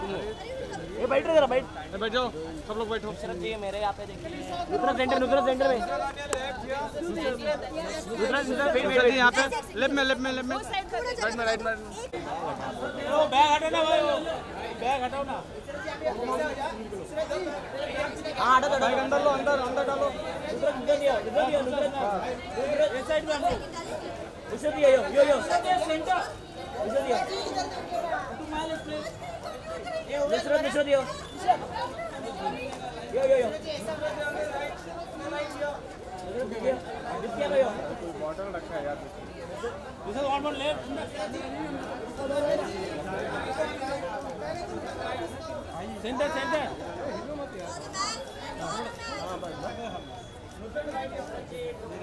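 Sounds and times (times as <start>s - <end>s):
chatter of voices: 0.0s - 52.0s.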